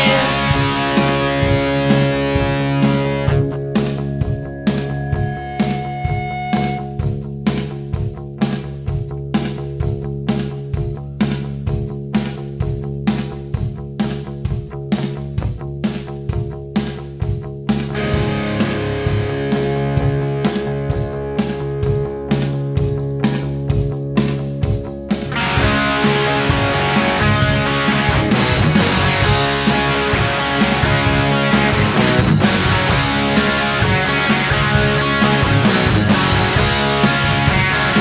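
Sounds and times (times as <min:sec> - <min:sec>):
instrumental rock music: 0:00.0 - 0:38.0.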